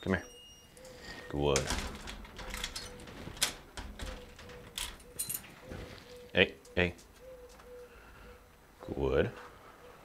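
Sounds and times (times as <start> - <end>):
keys rattling: 1.6 - 5.6.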